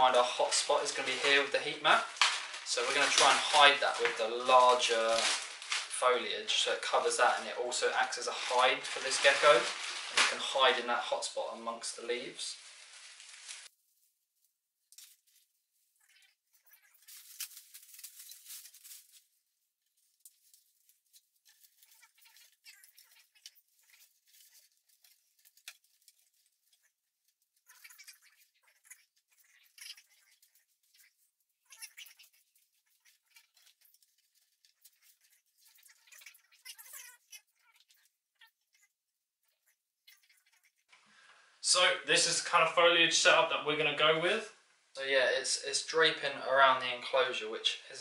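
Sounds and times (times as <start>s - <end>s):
plastic plants rustling: 0.0s - 38.9s
hand rummaging in plastic bag: 0.4s - 6.0s, 8.0s - 10.8s, 17.0s - 19.3s.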